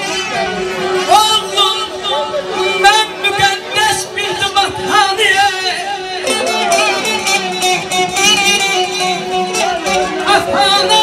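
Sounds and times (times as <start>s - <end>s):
plucked strings: 0.0s - 11.0s
man singing: 0.9s - 11.0s.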